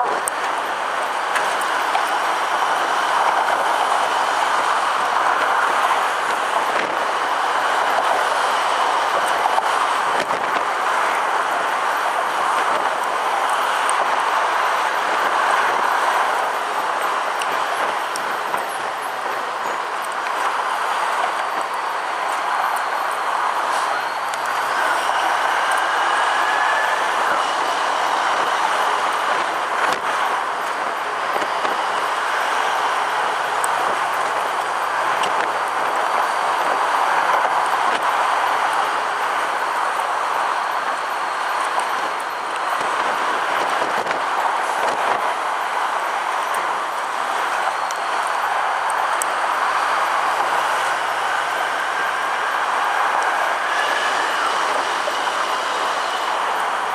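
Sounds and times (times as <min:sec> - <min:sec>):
road and wind roar from moving truck: 0:00.0 - 0:56.9.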